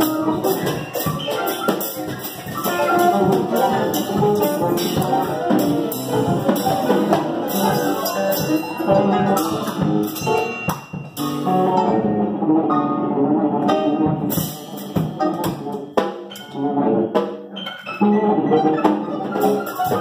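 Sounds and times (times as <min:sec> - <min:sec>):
sharp cymbal and drum strikes: 0:00.0 - 0:11.4
drum kit: 0:00.0 - 0:12.8, 0:13.5 - 0:17.9, 0:18.6 - 0:20.0
sustained melodic instrument lines: 0:00.0 - 0:20.0.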